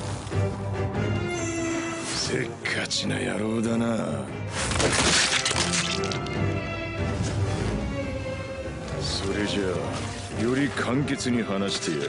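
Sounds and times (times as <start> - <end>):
dramatic background music: 0.0 - 12.0
cracking and breaking sounds: 4.5 - 6.5.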